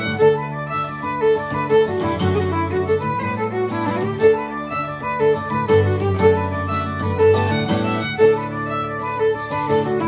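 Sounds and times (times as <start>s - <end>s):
fiddle melody: 0.0s - 10.0s.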